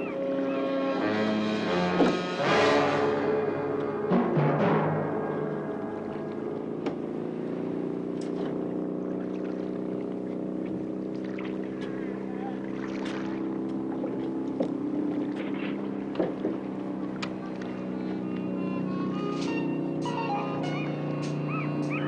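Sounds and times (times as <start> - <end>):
boat engine droning: 0.0 - 22.0
sharp knocks and clatters: 15.4 - 16.6.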